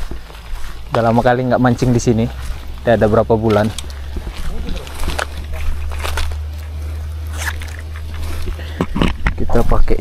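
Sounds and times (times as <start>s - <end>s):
footsteps on paved path: 0.0s - 10.0s.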